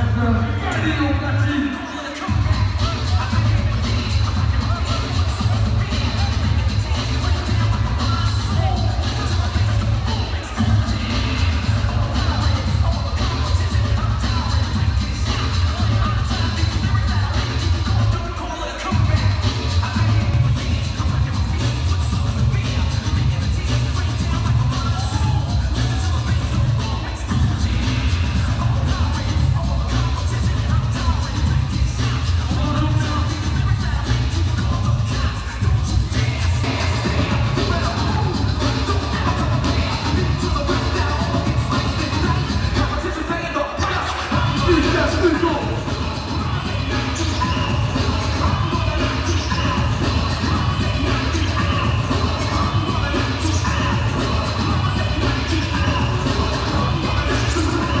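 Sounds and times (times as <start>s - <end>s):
dj music with heavy bass: 0.0s - 58.0s.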